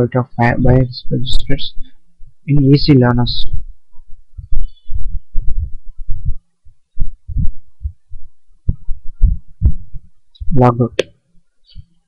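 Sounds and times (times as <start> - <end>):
dull low-pitched thumps: 1.8 - 2.5, 3.1 - 11.0.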